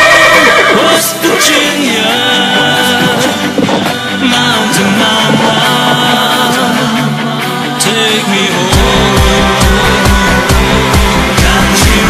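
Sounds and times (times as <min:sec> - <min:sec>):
horse whinnying: 0:00.0 - 0:01.7
country music backing track: 0:00.0 - 0:12.0.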